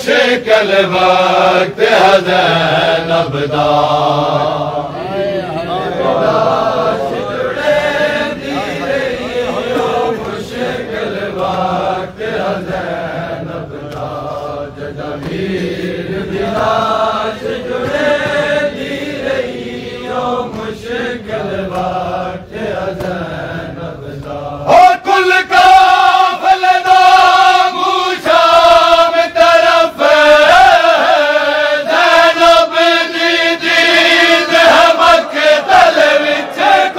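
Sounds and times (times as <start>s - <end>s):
men chanting a lament: 0.0s - 36.9s
chest-beating slaps: 13.8s - 14.3s, 15.1s - 16.9s, 21.6s - 22.1s.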